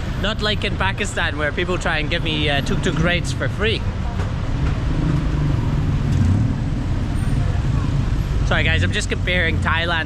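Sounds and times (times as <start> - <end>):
faint street noise: 0.0 - 10.0
vehicle engines rumbling: 0.0 - 10.0.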